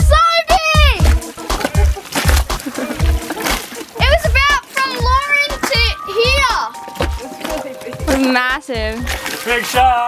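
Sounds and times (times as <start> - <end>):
water splashing: 0.0 - 10.0
people squealing and laughing: 1.2 - 4.4.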